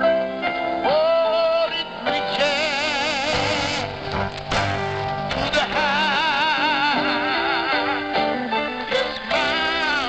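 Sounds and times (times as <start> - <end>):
choir music over radio: 0.8 - 10.0
voice singing with vibrato: 0.9 - 4.1, 5.3 - 10.0.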